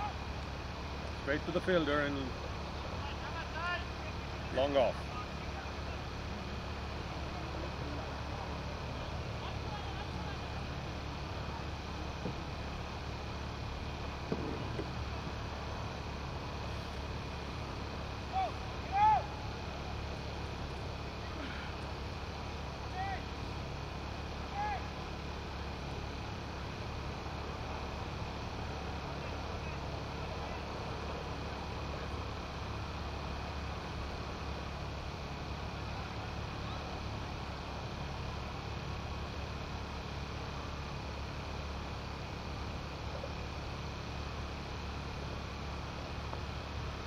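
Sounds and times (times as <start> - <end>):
constant low hum: 0.0 - 47.0
faint hiss: 0.0 - 47.0.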